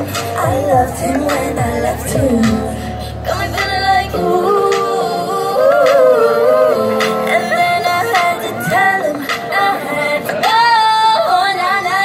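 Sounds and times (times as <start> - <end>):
backing music: 0.0 - 12.0
women singing pop through microphones: 0.0 - 12.0.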